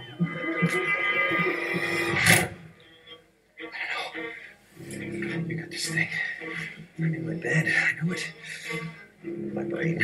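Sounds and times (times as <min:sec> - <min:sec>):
man speaking: 0:03.7 - 0:10.0.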